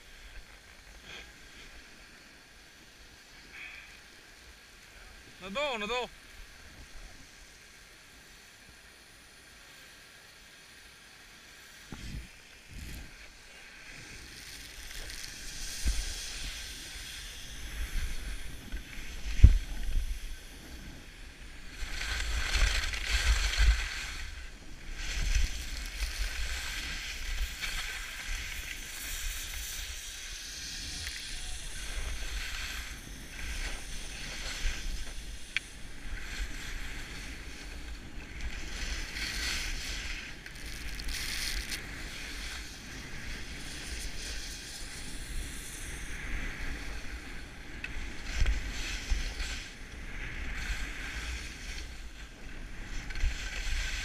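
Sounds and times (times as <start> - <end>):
skis scraping over snow: 0.0 - 54.0.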